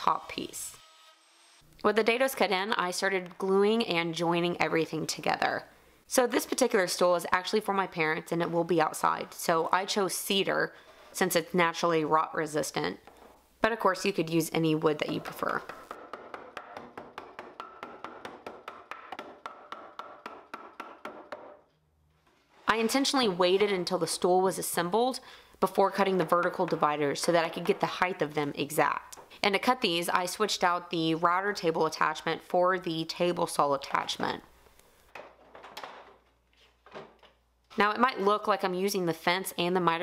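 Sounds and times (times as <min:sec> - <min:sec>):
mallet tapping wooden boards: 0:15.0 - 0:21.6.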